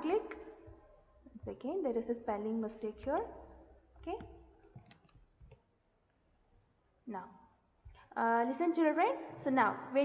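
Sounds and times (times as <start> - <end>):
computer mouse clicks: 4.0 - 5.6.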